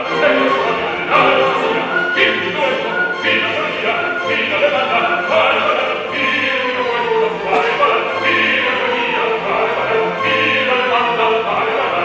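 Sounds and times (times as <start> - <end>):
man singing opera: 0.0 - 12.0
orchestra playing: 0.0 - 12.0.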